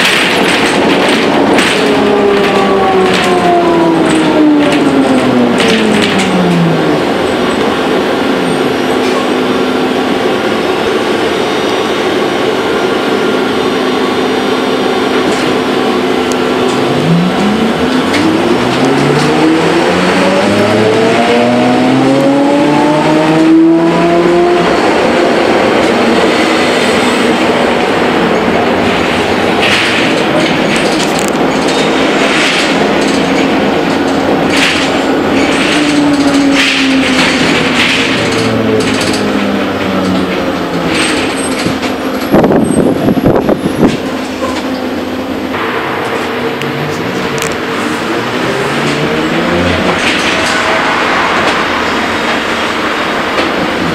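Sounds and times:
road noise: 0.0s - 53.9s.

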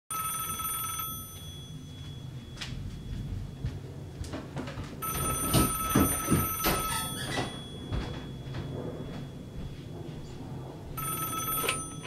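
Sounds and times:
telephone ringing: 0.1s - 3.6s, 5.0s - 8.8s, 11.0s - 12.0s.

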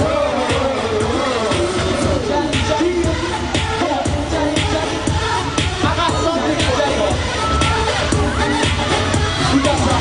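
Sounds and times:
men singing pop song: 0.0s - 10.0s
pop backing track with beat: 0.0s - 10.0s.

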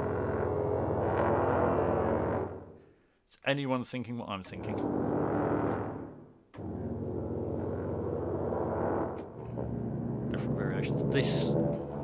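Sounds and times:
dissonant low brass cluster: 0.0s - 3.0s, 4.4s - 12.0s.

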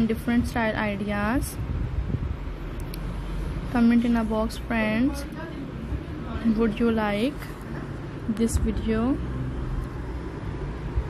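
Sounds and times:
woman speaking: 0.0s - 1.6s, 3.7s - 7.6s, 8.2s - 9.3s.

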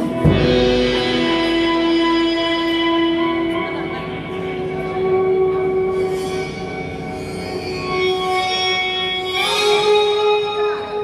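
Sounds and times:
electric guitar sustained notes: 0.0s - 11.0s.

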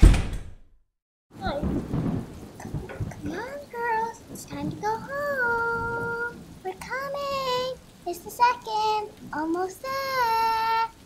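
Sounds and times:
loud low bang: 0.0s - 0.6s
voice with gliding pitch: 2.7s - 11.0s.

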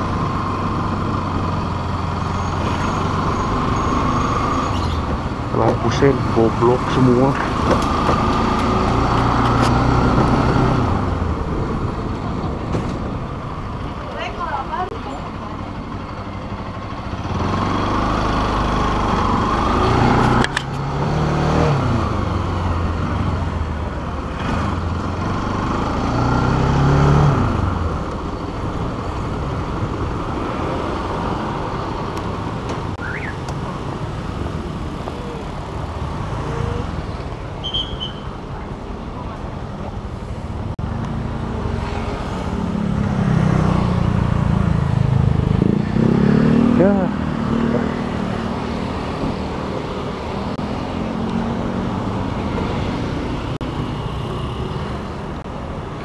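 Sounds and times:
road noise: 0.0s - 56.0s
motorcycle engine revving: 17.1s - 28.0s, 40.9s - 53.5s.

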